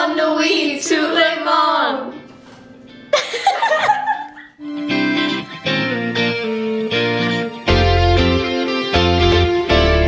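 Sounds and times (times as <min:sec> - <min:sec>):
background music: 0:00.0 - 0:10.0
girls laughing: 0:03.1 - 0:04.6.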